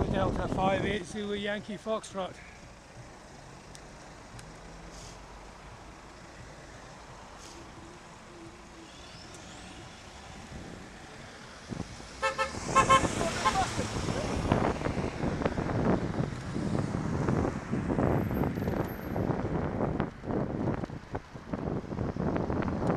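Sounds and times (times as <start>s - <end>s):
wind buffeting microphone: 0.0s - 1.2s, 10.3s - 22.9s
traffic: 0.0s - 22.9s
car horn toots: 12.2s - 13.7s.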